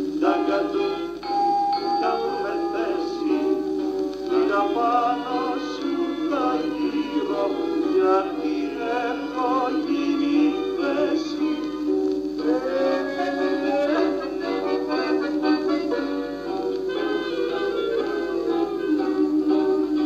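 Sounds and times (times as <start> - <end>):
instrumental accompaniment: 0.0 - 20.0
person singing with long notes: 0.0 - 20.0.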